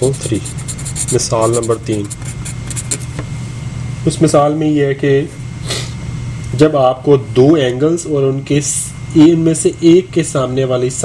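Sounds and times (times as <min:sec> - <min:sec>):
pen writing on paper: 0:00.0 - 0:03.1
low background hum: 0:00.0 - 0:11.0.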